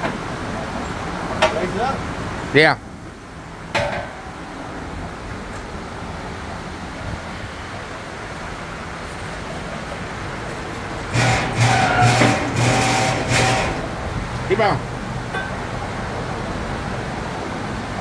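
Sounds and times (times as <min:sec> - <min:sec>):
shop noise: 0:10.6 - 0:16.2
metal clank: 0:11.1 - 0:14.0, 0:15.3 - 0:15.7
hydraulic pump motor humming: 0:11.1 - 0:14.2.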